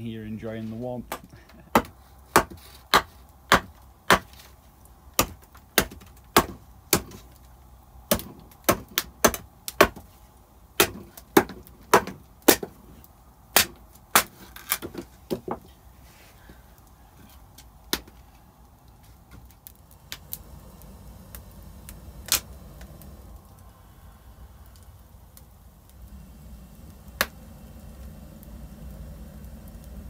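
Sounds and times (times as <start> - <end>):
hatchet chopping wood: 1.1 - 4.5, 5.2 - 7.2, 8.1 - 10.1, 10.8 - 12.8, 13.5 - 15.6.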